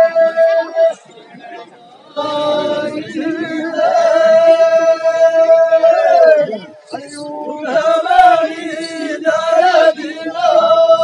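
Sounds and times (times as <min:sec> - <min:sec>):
voices singing together: 0:00.0 - 0:01.0, 0:02.0 - 0:11.0.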